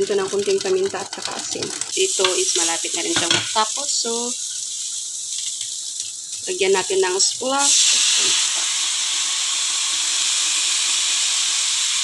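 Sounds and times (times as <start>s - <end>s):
green beans sizzling in oil: 0.0s - 12.0s.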